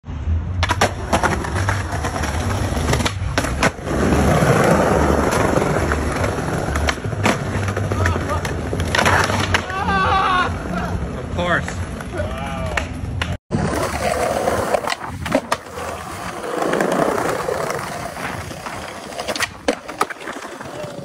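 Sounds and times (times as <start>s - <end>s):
skateboard wheels rolling on pavers: 0.5s - 21.0s
skateboard clacking on ground: 5.0s - 9.8s, 11.9s - 21.0s.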